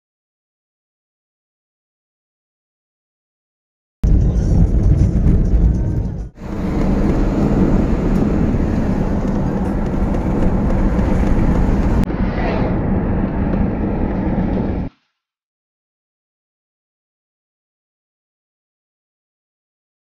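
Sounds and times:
car road and wind noise: 0:04.1 - 0:14.9.

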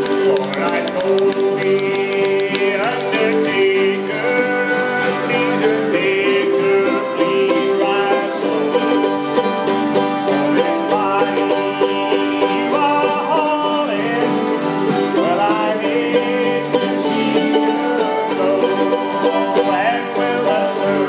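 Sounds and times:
bluegrass string band playing: 0:00.0 - 0:21.0.

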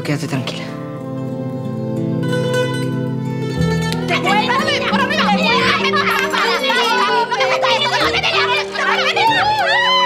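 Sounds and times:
background music: 0:00.0 - 0:10.0
women squealing and shrieking: 0:04.1 - 0:10.0.

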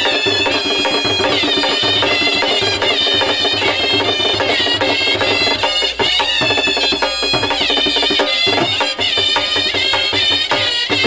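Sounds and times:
hand drums: 0:00.0 - 0:11.0
nasal wind instrument melody: 0:00.0 - 0:11.0.

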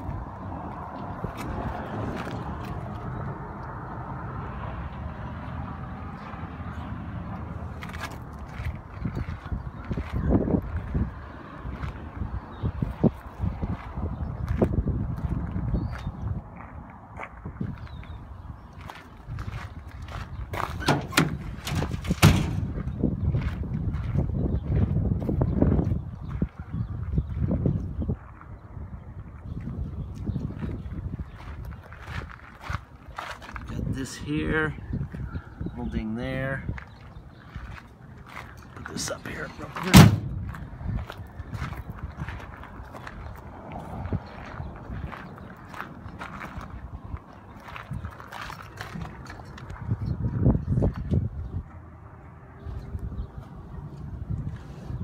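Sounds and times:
footsteps crunching on gravel: 0:07.7 - 0:12.3, 0:12.9 - 0:20.8, 0:29.5 - 0:34.7, 0:36.0 - 0:50.3
tailgate latch clicks and clanks: 0:20.8 - 0:22.6, 0:39.9 - 0:40.3.

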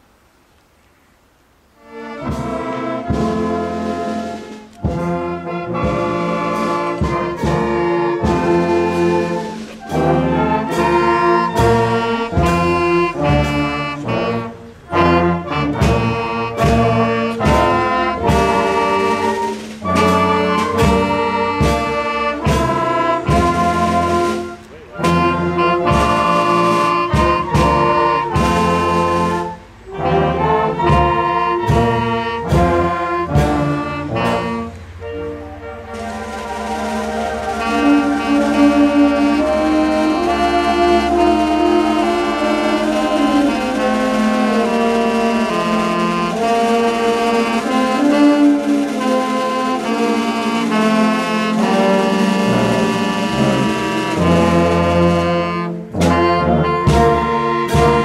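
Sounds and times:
wind band with brass playing: 0:01.7 - 0:58.0.

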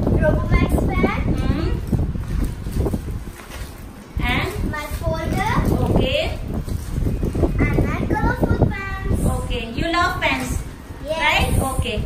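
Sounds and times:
faint rustles and knocks: 0:01.8 - 0:08.1.

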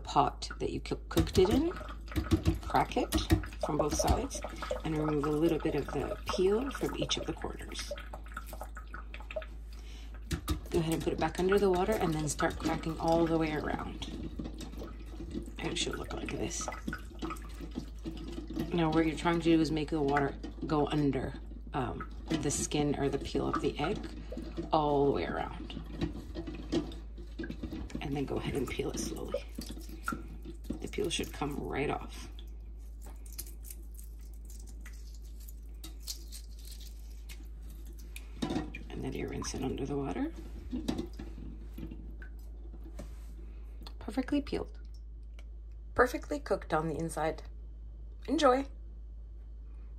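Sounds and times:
water dripping: 0:00.0 - 0:45.9
eggshell crackling: 0:00.6 - 0:43.0
eggshell crackling as peeled: 0:32.8 - 0:38.3.

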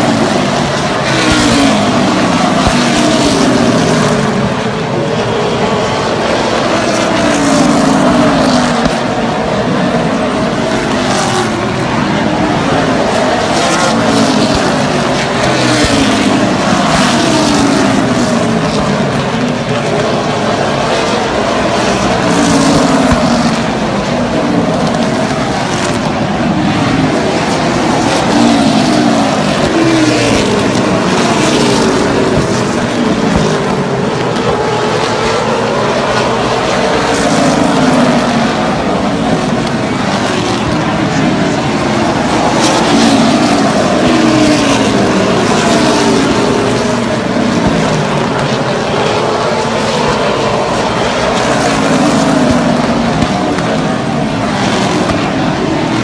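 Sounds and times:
race car engines passing: 0:00.0 - 0:56.0.

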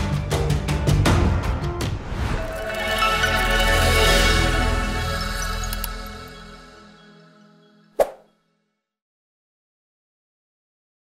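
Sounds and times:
outro music: 0:01.3 - 0:07.3
short pop sound effect: 0:08.0 - 0:08.2.

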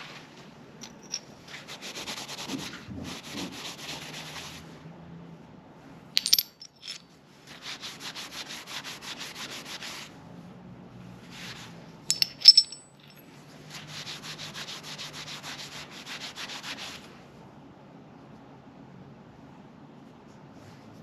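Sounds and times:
metal pieces clinking: 0:00.8 - 0:01.2, 0:06.2 - 0:07.0, 0:12.1 - 0:13.2.

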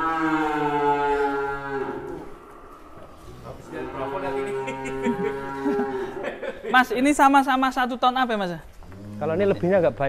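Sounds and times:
bull mooing: 0:00.0 - 0:06.3, 0:08.8 - 0:09.6.

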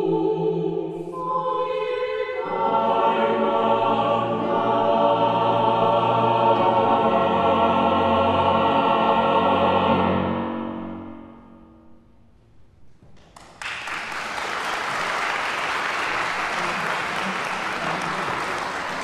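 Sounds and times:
mixed choir singing: 0:00.0 - 0:11.1.

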